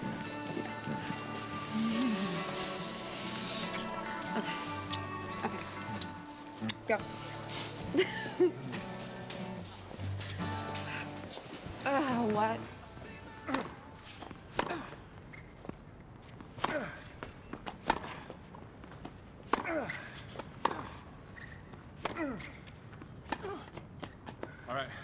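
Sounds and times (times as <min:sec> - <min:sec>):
tennis ball bouncing: 0:14.2 - 0:15.4, 0:17.5 - 0:24.5.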